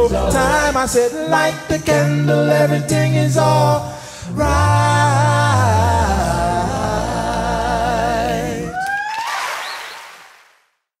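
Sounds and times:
choir singing: 0.0s - 8.8s.

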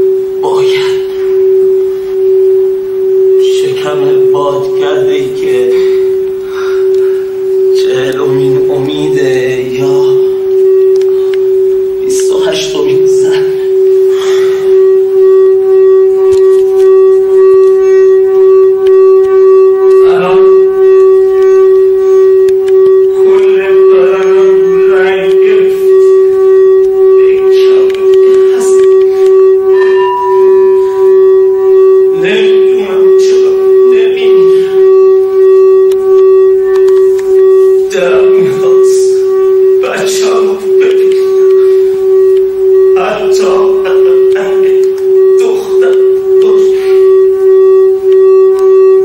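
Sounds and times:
steady musical drone: 0.0s - 49.0s
man speaking: 0.4s - 1.2s, 3.4s - 6.0s, 7.7s - 10.4s, 12.0s - 13.7s, 20.0s - 20.5s, 23.2s - 25.9s, 27.2s - 28.8s, 32.1s - 34.8s, 37.8s - 41.3s, 43.0s - 47.0s.

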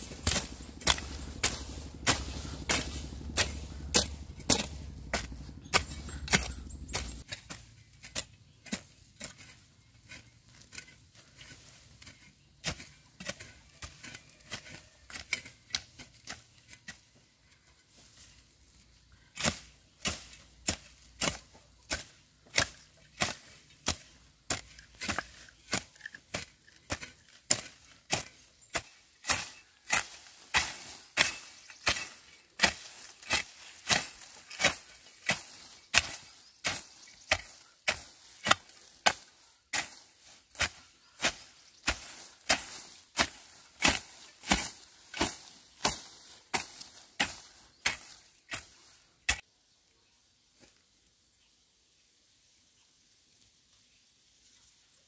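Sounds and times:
hand hoe striking soil: 0.0s - 49.5s.

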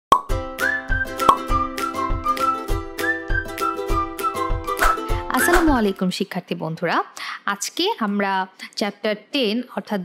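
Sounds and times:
pop sound effect: 0.1s - 0.4s, 1.2s - 1.8s, 4.7s - 5.9s.

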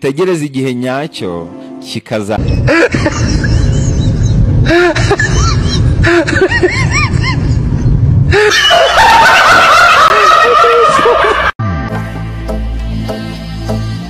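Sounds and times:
snickering laughter: 2.6s - 11.5s
music with heavy bass: 11.1s - 14.0s.

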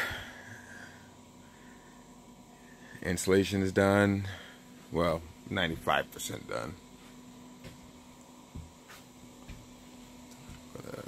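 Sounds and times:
man breathing out: 0.0s - 3.0s
faint steady hum: 0.0s - 11.0s.

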